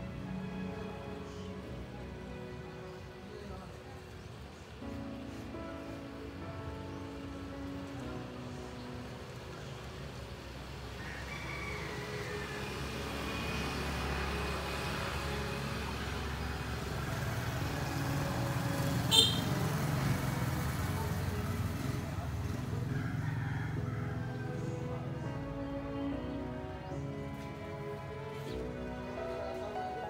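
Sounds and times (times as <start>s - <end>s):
motorbike engines passing: 6.1s - 30.0s.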